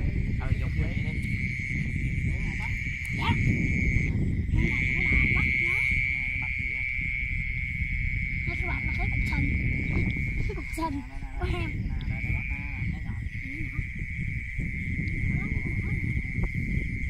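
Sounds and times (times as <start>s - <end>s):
faint voices: 0.0s - 17.0s
high-pitched chorus of night animals: 0.0s - 17.0s.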